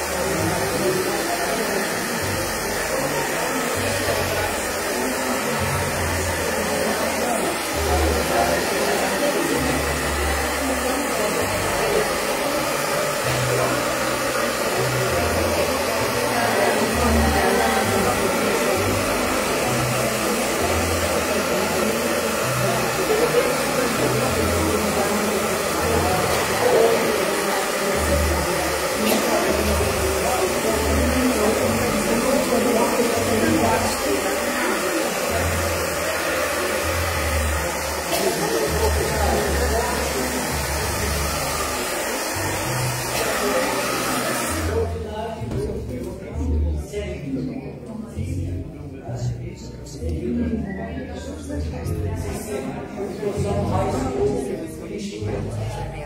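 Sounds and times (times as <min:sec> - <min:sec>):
hair dryer running: 0:00.0 - 0:45.0.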